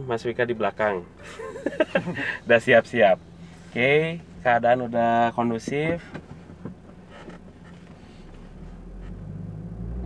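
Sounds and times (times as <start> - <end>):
car engine drone in cabin: 0.0 - 10.0.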